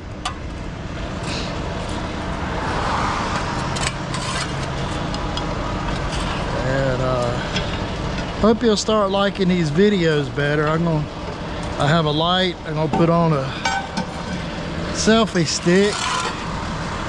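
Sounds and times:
truck engine and road noise: 0.0s - 17.0s
metal clanks on manhole lid: 12.8s - 14.5s, 15.1s - 16.5s.

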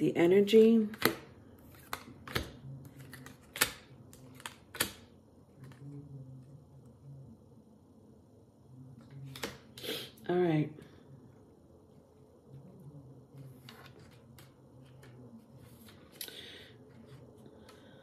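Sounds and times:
cards snapping while shuffled: 0.9s - 5.8s.

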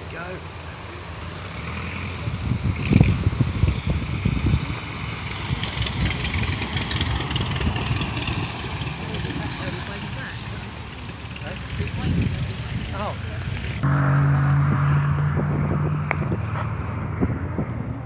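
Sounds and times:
biplane engine running: 2.2s - 18.0s.

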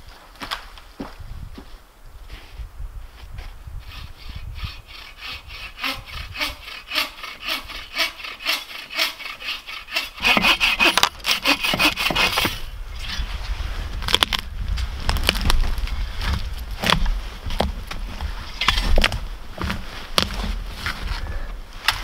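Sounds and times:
hand saw cutting log: 3.8s - 13.3s.

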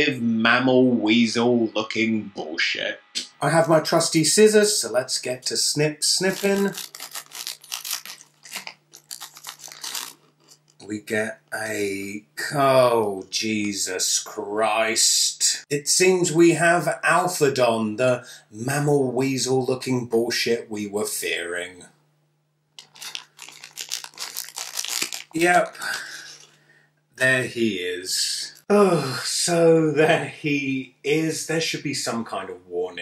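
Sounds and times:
plastic packet crinkling: 6.1s - 10.8s, 22.8s - 26.6s
scissors cutting plastic: 6.3s - 10.7s.

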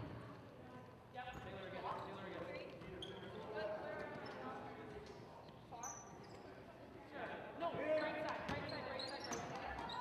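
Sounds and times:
voices echoing in a gymnasium: 0.0s - 10.0s.

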